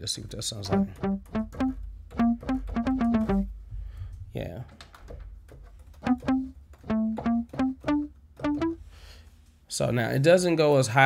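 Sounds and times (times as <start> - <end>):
muted plucked bass notes: 0.7 - 3.5, 6.0 - 8.8.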